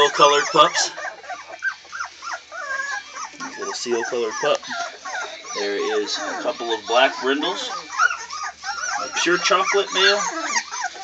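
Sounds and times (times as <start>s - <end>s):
puppies whimpering: 0.0s - 11.0s.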